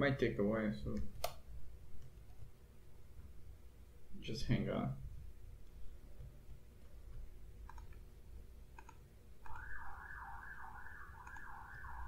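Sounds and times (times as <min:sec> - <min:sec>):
computer mouse clicks: 0:07.6 - 0:08.1, 0:08.7 - 0:09.6, 0:11.2 - 0:11.6.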